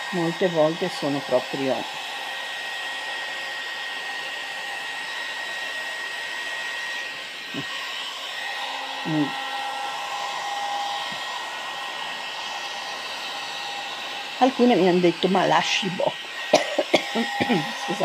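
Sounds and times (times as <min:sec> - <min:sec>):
hot air brush fan hiss and whine: 0:00.0 - 0:18.0.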